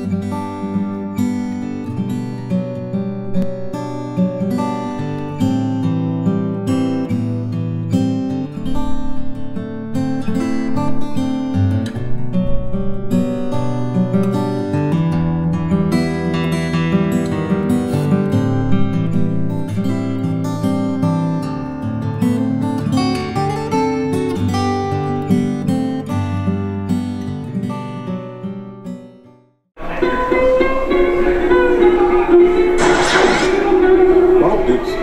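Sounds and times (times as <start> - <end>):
fingerpicked acoustic guitar: 0.0 - 35.0.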